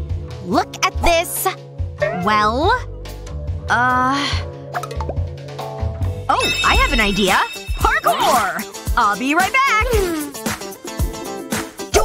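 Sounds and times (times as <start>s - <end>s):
light comic background music: 0.0s - 12.0s.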